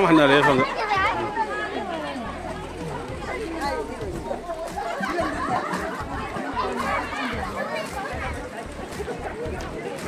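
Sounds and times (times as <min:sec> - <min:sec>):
overlapping conversational chatter: 0:00.0 - 0:10.0.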